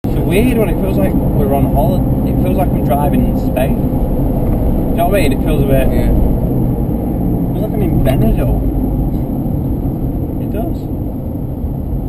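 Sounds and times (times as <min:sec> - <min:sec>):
car engine and road noise: 0:00.0 - 0:12.0
person speaking: 0:07.6 - 0:08.7.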